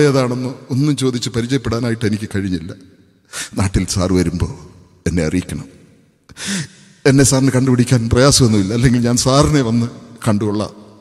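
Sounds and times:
man speaking: 0.0 - 2.8, 3.4 - 5.7, 6.5 - 10.8.

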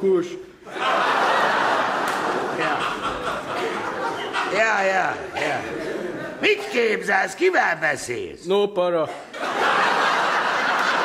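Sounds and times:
audience laughing: 0.6 - 7.1, 9.3 - 11.0.

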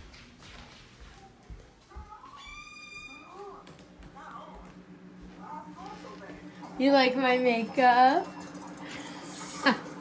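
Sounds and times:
door hinge squeaking: 2.3 - 3.6.

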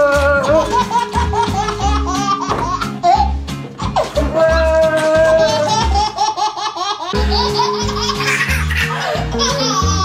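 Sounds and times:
baby laughing: 0.0 - 10.0
background music: 0.0 - 10.0.

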